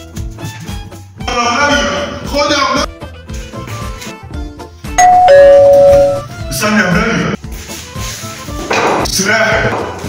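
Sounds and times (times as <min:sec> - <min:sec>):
background music: 0:00.0 - 0:10.0
electronic two-tone doorbell chime: 0:05.0 - 0:06.3.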